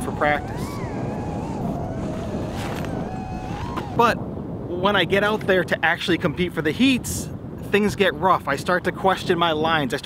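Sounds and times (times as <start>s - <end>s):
drone motors whining: 0.0s - 4.2s
wind rushing on microphone: 0.0s - 10.0s.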